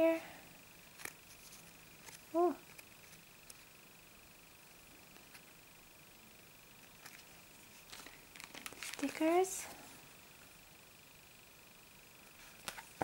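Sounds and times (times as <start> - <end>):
faint high whine: 0.0 - 13.0
paper and plastic sleeve ticks: 7.9 - 9.2.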